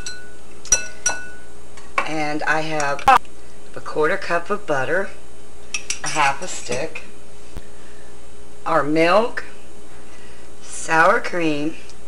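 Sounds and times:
kitchenware clinking on ceramic bowl: 0.0s - 2.1s, 5.8s - 6.9s.

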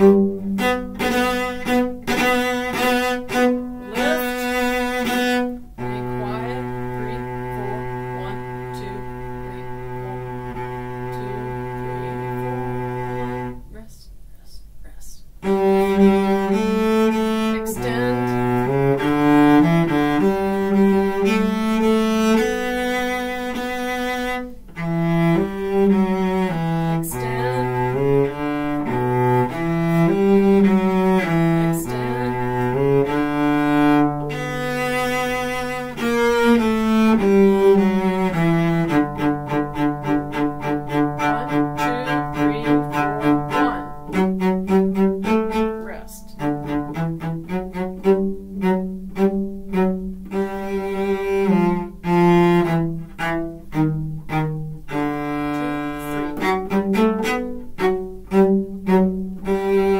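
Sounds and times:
solo cello playing march: 0.0s - 13.8s, 15.4s - 59.9s.

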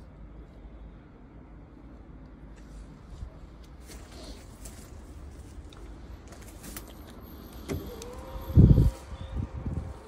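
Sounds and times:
tailgate motor humming: 7.5s - 8.9s.

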